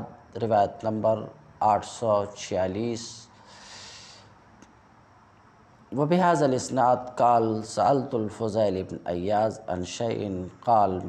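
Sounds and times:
man breathing in: 3.4 - 4.4.

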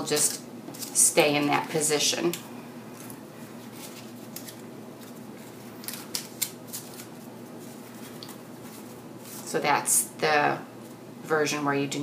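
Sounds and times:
faint room hum: 0.0 - 12.0
cardstock crackling: 3.0 - 9.5.

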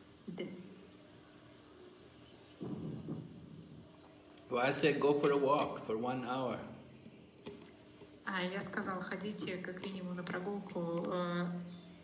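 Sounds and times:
man swallowing: 2.6 - 3.5.

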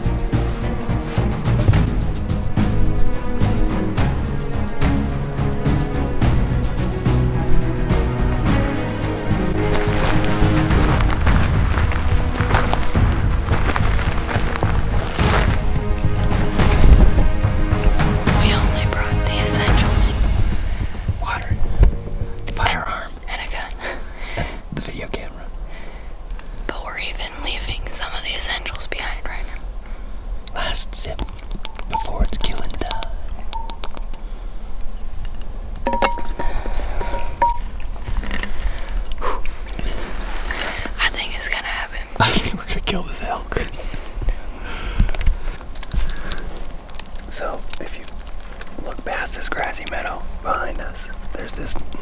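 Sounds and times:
people whispering: 18.3 - 20.2, 20.8 - 21.8, 22.4 - 25.6, 26.7 - 29.7, 30.5 - 31.2, 31.9 - 33.4, 39.2 - 43.8, 47.3 - 48.1, 48.8 - 52.0.

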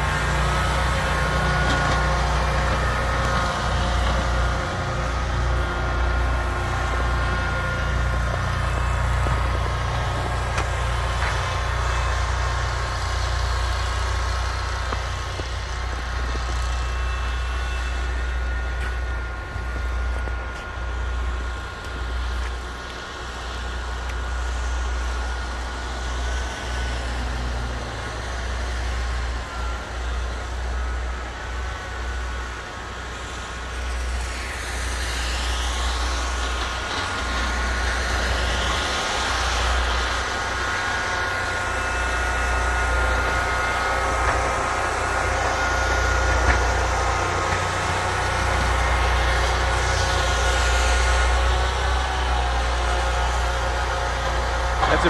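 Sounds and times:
snow blower engine whining: 0.0 - 55.0.

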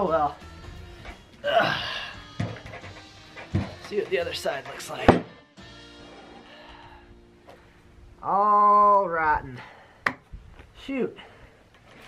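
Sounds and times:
background music: 0.0 - 9.0
low thuds of wooden slab: 2.4 - 5.4.

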